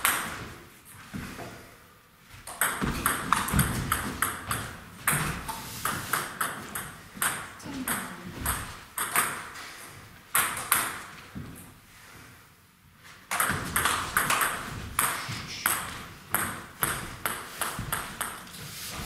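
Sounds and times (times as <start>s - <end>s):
table tennis ball pinging: 2.4s - 9.5s, 10.3s - 11.1s, 13.3s - 18.5s.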